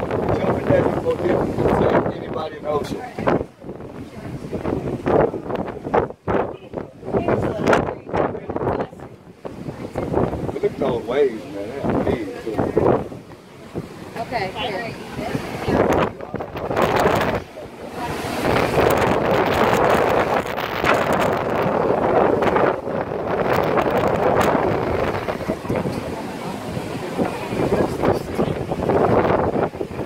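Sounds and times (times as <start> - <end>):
surf breaking on rocks: 0.0 - 30.0
wind buffeting microphone: 0.0 - 30.0.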